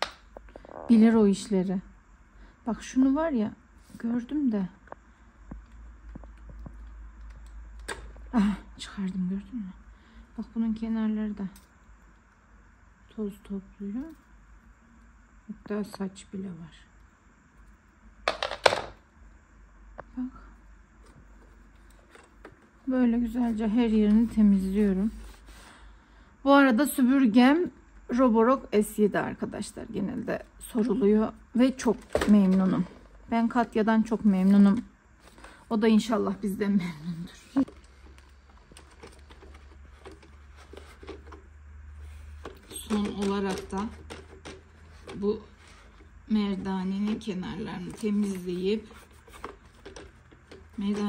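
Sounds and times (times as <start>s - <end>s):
steady low hum: 0.0s - 51.0s
plastic parts clicking: 18.3s - 19.0s, 37.6s - 41.4s, 42.3s - 45.2s, 48.9s - 51.0s
hand rubbing plastic: 21.0s - 25.7s, 37.1s - 51.0s
plastic bag crinkling: 37.3s - 41.4s.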